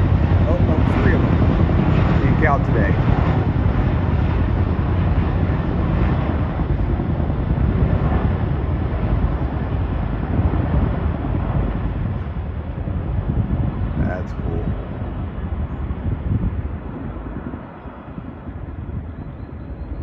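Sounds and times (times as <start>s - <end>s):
helicopter rotor rumble: 0.0s - 20.0s.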